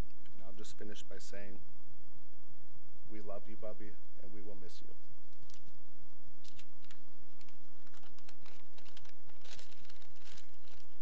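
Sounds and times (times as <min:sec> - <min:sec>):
electrical hum: 0:00.0 - 0:11.0
papers rustling and clicking: 0:05.3 - 0:05.8, 0:06.4 - 0:11.0.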